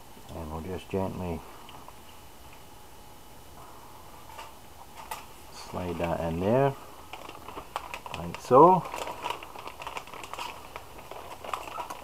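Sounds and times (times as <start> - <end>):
plastic bag crinkling: 5.0 - 12.0.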